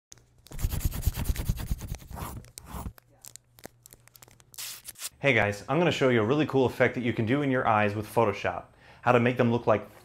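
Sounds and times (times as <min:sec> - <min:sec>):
paper crinkling and scratching: 0:00.4 - 0:05.1.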